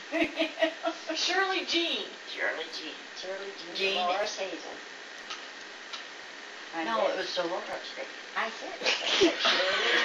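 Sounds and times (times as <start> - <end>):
steady hiss: 0.0 - 10.0
woman talking: 0.1 - 4.8, 6.7 - 10.0.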